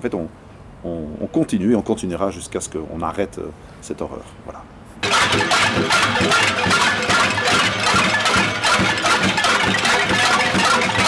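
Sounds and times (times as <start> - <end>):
metal pots beaten with spoons: 5.0 - 11.0
music: 5.0 - 11.0.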